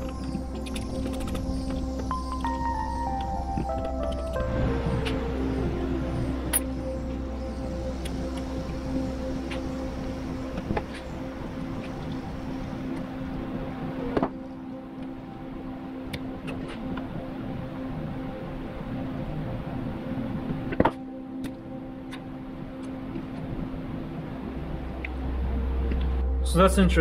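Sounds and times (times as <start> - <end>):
steady droning hum: 0.0 - 27.0.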